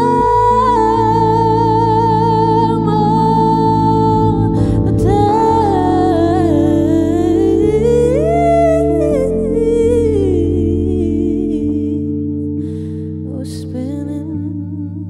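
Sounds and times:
low bass: 0:00.0 - 0:15.0
stage keyboard chords: 0:00.0 - 0:15.0.

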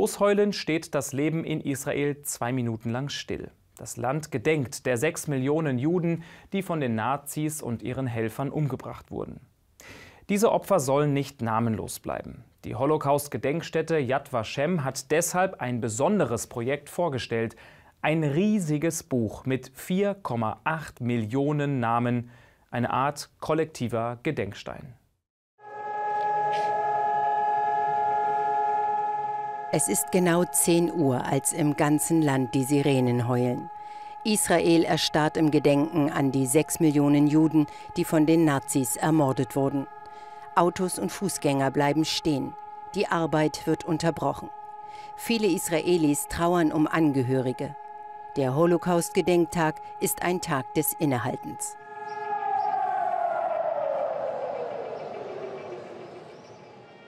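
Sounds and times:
steady civil defence siren: 0:25.6 - 0:57.0.

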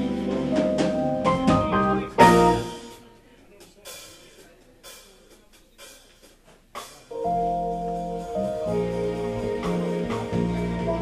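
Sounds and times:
smooth jazz trio playing: 0:00.0 - 0:11.0.

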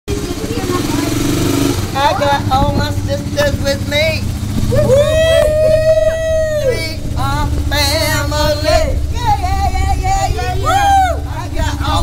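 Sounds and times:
vehicle engine in a tunnel: 0:00.1 - 0:12.0.

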